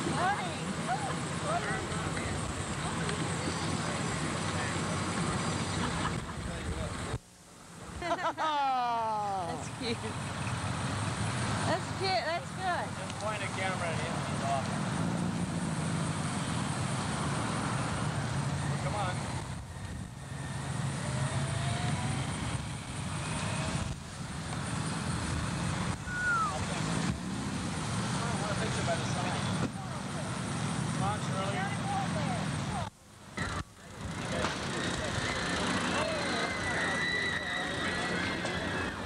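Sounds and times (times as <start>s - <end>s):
steady motor hum: 0.0s - 32.8s.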